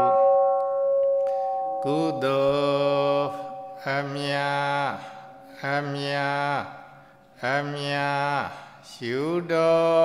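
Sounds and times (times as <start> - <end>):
man chanting: 0.0 - 0.3, 1.8 - 10.0
struck bell ringing: 0.0 - 5.6.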